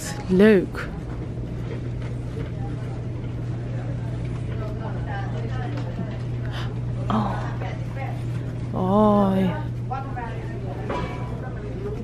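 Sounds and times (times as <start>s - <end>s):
shopping cart rolling rumble: 0.0s - 12.0s
steady low hum: 0.0s - 12.0s.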